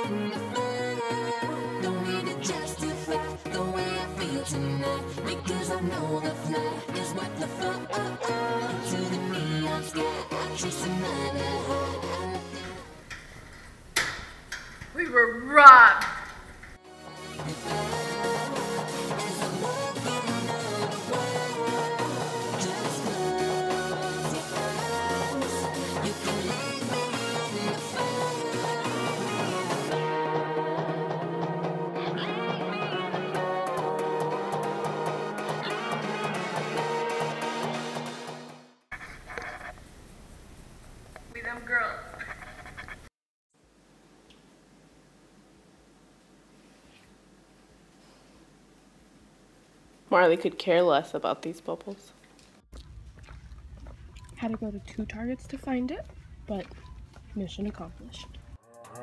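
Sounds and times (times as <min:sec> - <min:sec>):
woman's wordless outburst: 0:14.9 - 0:16.3
quiet room noise: 0:38.9 - 0:58.6.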